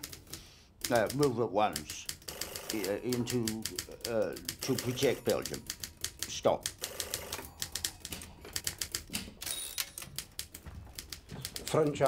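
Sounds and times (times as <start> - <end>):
manual typewriter keys clacking: 0.0 - 12.0
typewriter rasp: 0.8 - 12.0.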